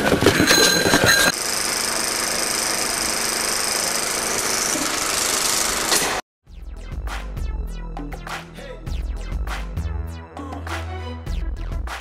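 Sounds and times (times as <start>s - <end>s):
small motor running: 0.4s - 6.2s.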